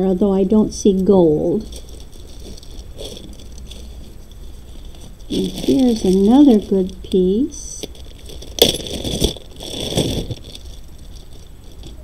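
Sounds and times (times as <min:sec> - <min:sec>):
plastic bag crinkling: 0:01.6 - 0:12.0.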